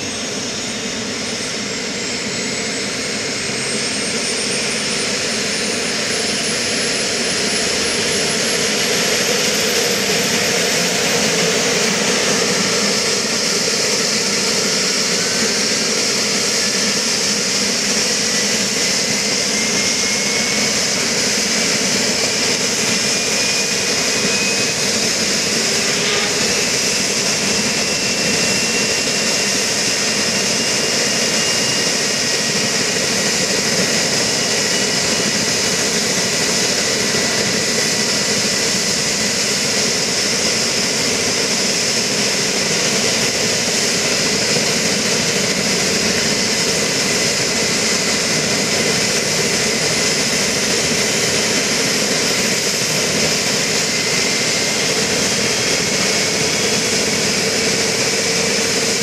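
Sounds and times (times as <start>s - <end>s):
turbine engines whining: 0.0s - 59.0s.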